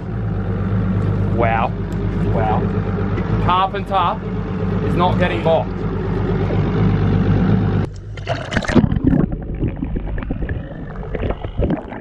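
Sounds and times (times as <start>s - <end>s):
boat engine humming: 0.0s - 12.0s
water sloshing and splashing: 5.6s - 12.0s.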